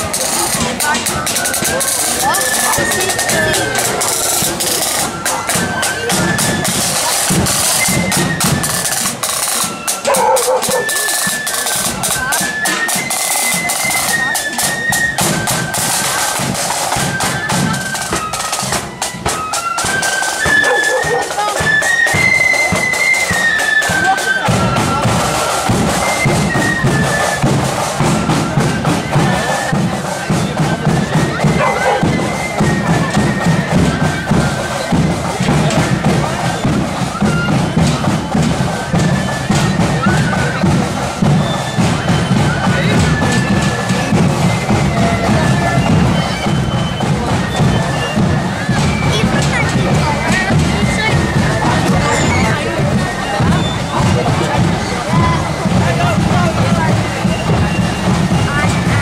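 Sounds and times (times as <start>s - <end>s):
bass drum and snare drums: 0.0s - 59.0s
flute band melody: 0.0s - 59.0s
spectators talking: 0.0s - 59.0s.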